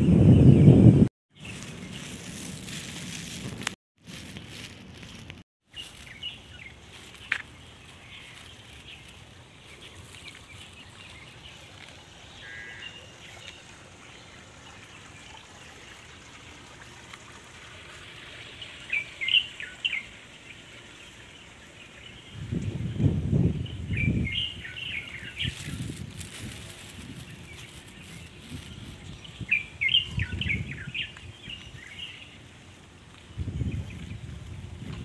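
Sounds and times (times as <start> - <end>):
small birds chirping: 0.0 - 16.6, 18.2 - 35.0
faint outdoor background noise: 1.3 - 35.0.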